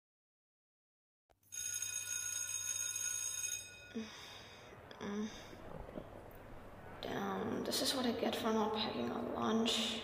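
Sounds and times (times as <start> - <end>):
electric bell ringing: 1.4 - 4.3
low hum: 3.7 - 10.0.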